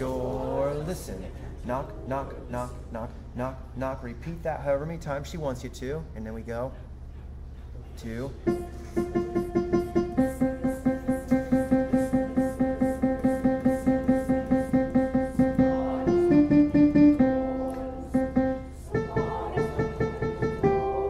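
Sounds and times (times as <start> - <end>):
piano repeating notes: 8.4 - 21.0.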